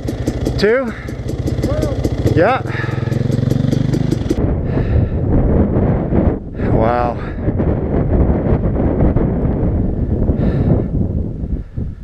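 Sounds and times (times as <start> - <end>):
dirt bike engine running: 0.0 - 4.6
wind buffeting microphone: 0.0 - 12.0.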